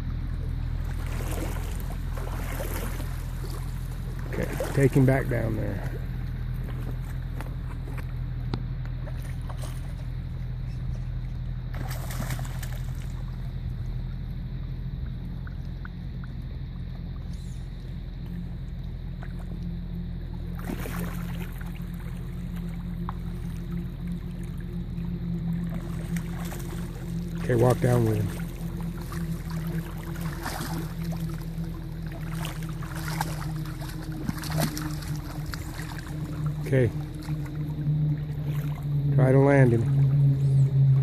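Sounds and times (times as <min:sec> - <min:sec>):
shallow creek rushing: 0:00.0 - 0:06.9, 0:23.2 - 0:41.0.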